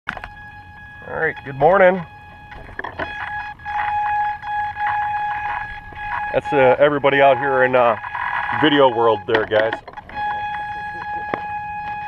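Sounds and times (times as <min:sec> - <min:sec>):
model airplane motor whine: 0:00.1 - 0:12.0.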